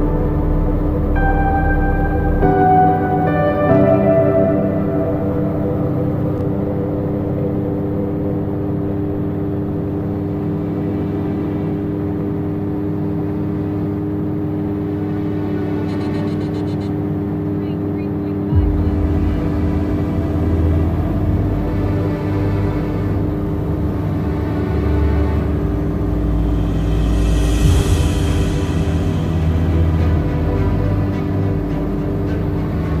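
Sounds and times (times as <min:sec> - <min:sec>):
deep low rumble: 0:00.0 - 0:33.0
propeller engine drone: 0:00.0 - 0:33.0.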